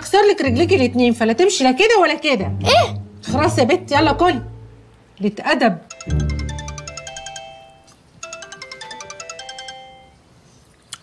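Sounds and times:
phone melodic ringtone: 5.9s - 10.3s.

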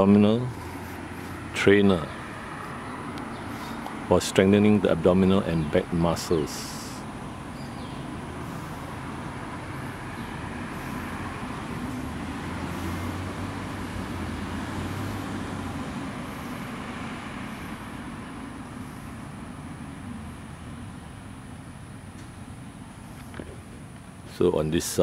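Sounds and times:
low engine hum: 0.0s - 24.7s
road traffic rumble: 0.0s - 25.0s.

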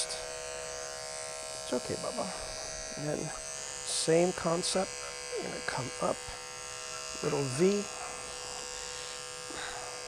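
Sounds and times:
electric clipper buzzing: 0.0s - 10.0s.

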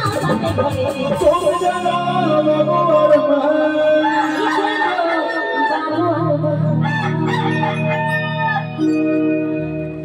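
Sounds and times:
wavering high melody: 1.5s - 10.0s
low keyboard chord: 6.1s - 10.0s.

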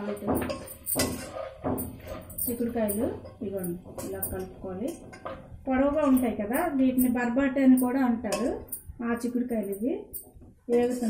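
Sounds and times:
spoon scraping a pot: 0.0s - 9.0s, 10.2s - 11.0s.

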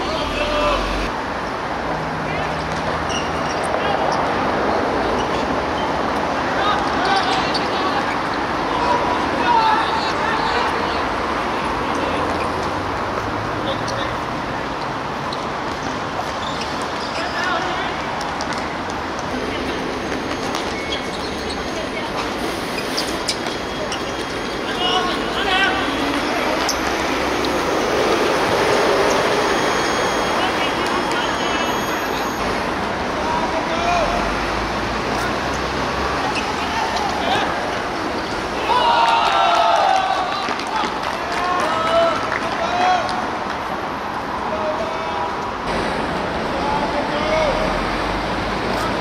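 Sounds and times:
players shouting and cheering: 0.0s - 1.1s, 6.4s - 12.4s, 23.8s - 32.4s, 35.1s - 43.5s
rushing background noise: 0.0s - 41.4s, 42.2s - 49.0s.

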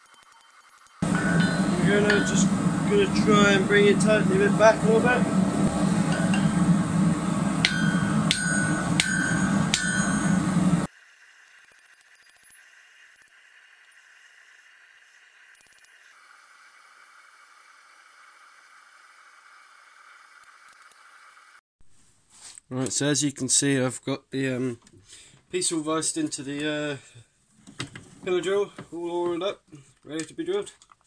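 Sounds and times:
hammer ringing on anvil: 1.0s - 10.9s
steady low drone: 1.0s - 10.9s.

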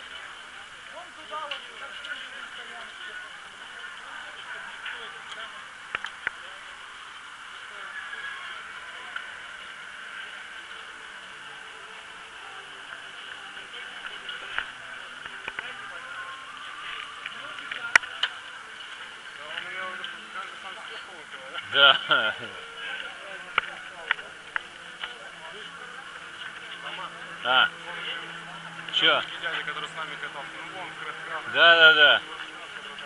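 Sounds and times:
indistinct chatter: 0.0s - 33.0s.

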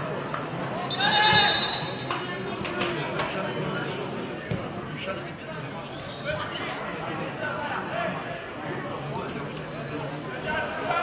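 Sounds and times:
loud shouted call: 0.9s - 2.0s.

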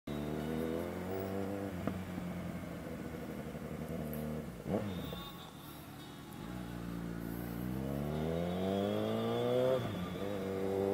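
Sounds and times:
motorcycle engine accelerating: 0.1s - 5.1s, 6.5s - 10.9s.

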